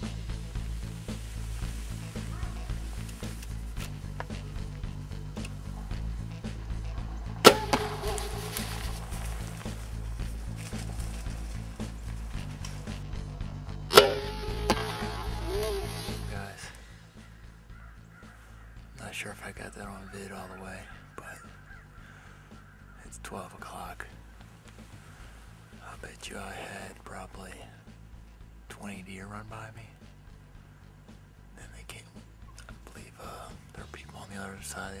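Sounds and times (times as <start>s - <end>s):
background music: 0.0s - 35.0s
bow shot crack: 7.3s - 10.8s, 13.9s - 16.8s.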